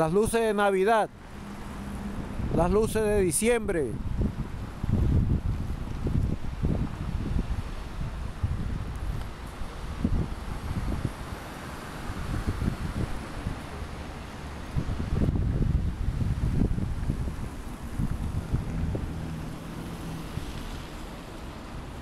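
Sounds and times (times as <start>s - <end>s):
city street traffic: 0.0s - 22.0s
wind buffeting microphone: 1.4s - 22.0s.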